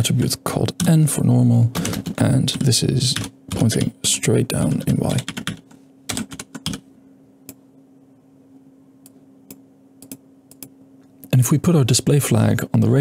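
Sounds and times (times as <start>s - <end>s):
computer keyboard typing: 1.8s - 3.9s, 5.1s - 6.8s.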